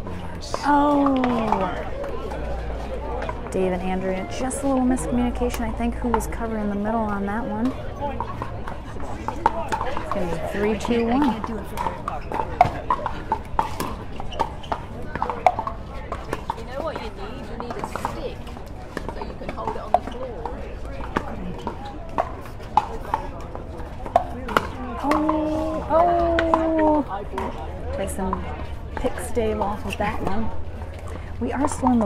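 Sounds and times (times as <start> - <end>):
crowd chatter: 0.0 - 32.0
paddles hitting plastic ball: 21.0 - 27.5.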